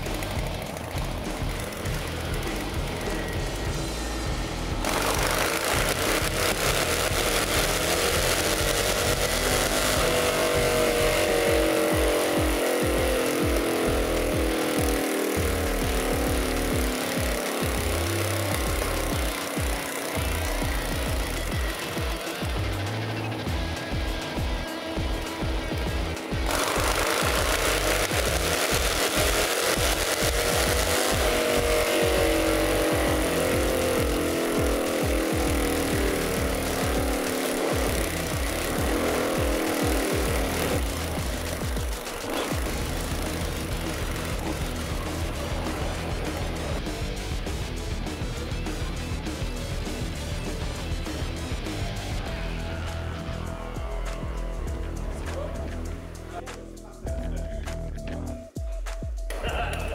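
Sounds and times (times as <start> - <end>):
motorcycle engine on dyno: 0.0 - 56.0
background music: 0.0 - 59.9.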